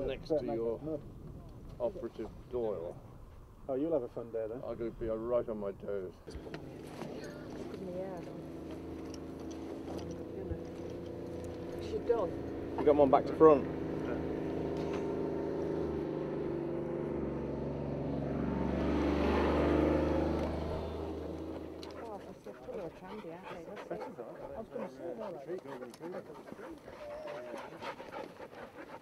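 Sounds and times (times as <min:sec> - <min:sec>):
vehicle engine humming: 0:05.6 - 0:29.0
dogs panting: 0:06.4 - 0:14.4, 0:20.6 - 0:29.0.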